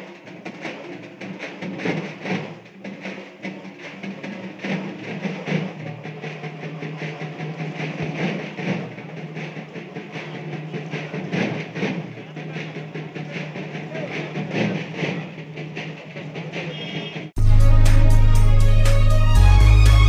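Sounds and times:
rhythmic percussion: 0.0s - 20.0s
mix of voices: 5.6s - 17.0s.

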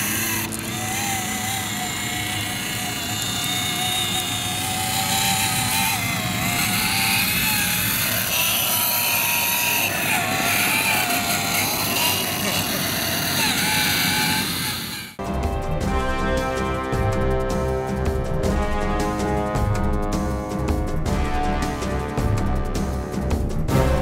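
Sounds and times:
electric motor and gearbox whining: 0.0s - 15.6s.

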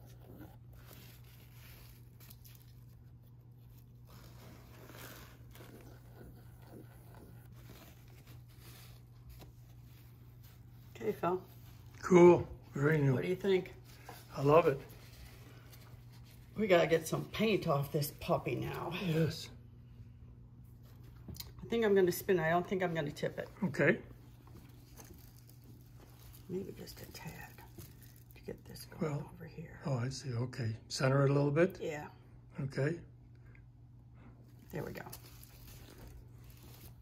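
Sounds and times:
low room hum: 0.0s - 37.0s
faint rustles: 23.5s - 28.8s.

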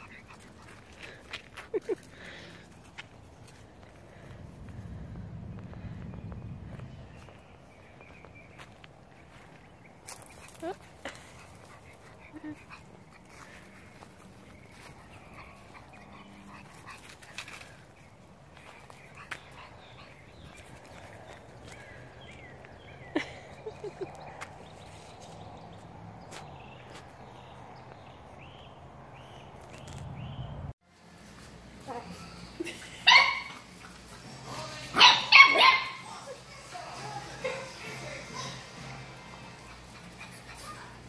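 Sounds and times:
small dogs barking: 32.9s - 33.8s, 34.9s - 36.4s
puppy high-pitched yelps: 33.0s - 33.6s, 35.0s - 36.0s.

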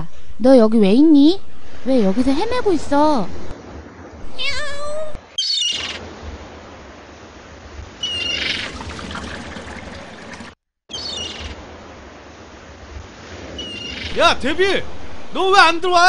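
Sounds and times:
seagull cries: 5.4s - 6.0s
beach surf: 11.2s - 16.0s.

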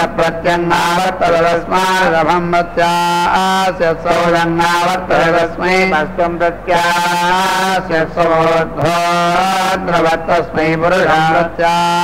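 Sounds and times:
man chanting mantras: 0.0s - 12.0s.

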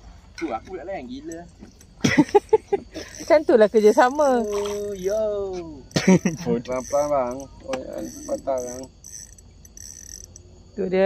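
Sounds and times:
insects chirping: 0.0s - 11.0s
steady high whine: 0.0s - 11.0s
person speaking: 3.0s - 8.9s.

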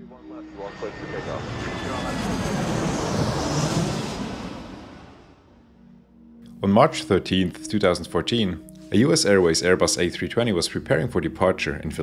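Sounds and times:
jet aircraft flying past: 0.0s - 6.0s.

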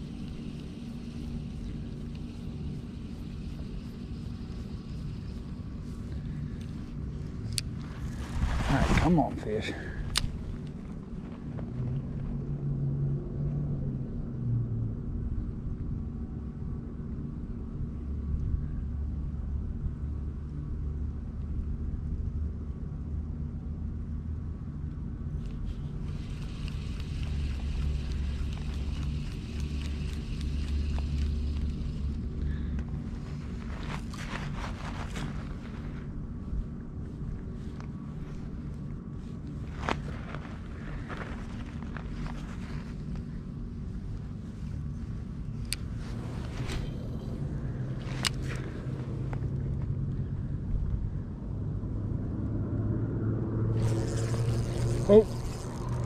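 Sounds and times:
fishing reel whirring: 0.0s - 8.2s, 25.4s - 34.3s, 53.7s - 56.0s
low rumble with hum: 0.0s - 56.0s.

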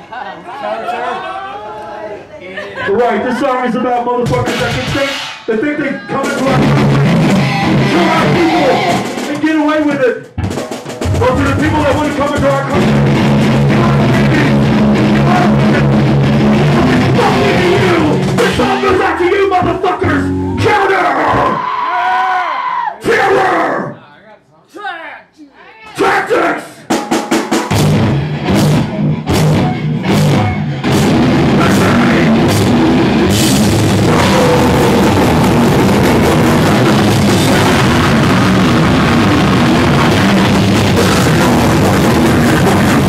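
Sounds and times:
heavy metal band playing live: 4.2s - 5.4s, 6.1s - 9.6s, 10.3s - 21.6s, 26.9s - 43.0s
vocalist screaming through pa: 20.7s - 24.0s, 34.0s - 36.2s.

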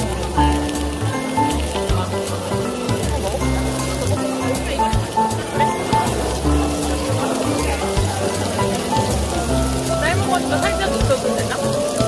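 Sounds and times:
background music with bass line: 0.0s - 12.0s
meat sizzling on a griddle: 0.0s - 12.0s.

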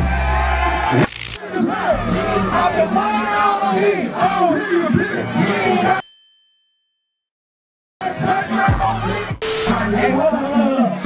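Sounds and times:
bright bell-like ding: 6.0s - 7.3s.

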